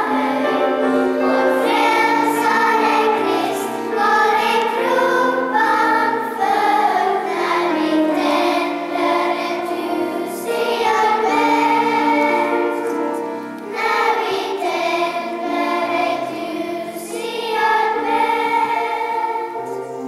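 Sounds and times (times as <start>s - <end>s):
children's choir singing: 0.0s - 20.0s.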